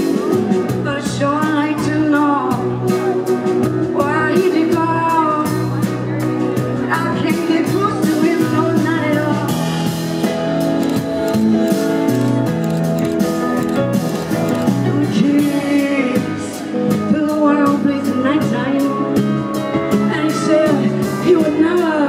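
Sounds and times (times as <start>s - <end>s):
bass notes: 0.0s - 22.0s
live rock band: 0.0s - 22.0s
woman singing: 0.7s - 5.9s, 6.8s - 9.7s, 14.9s - 22.0s.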